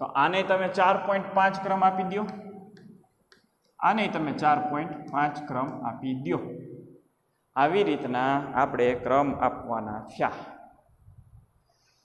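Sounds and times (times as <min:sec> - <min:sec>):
chalk clicking on blackboard: 0:02.8 - 0:03.8
man's voice: 0:03.8 - 0:06.7, 0:07.6 - 0:10.6.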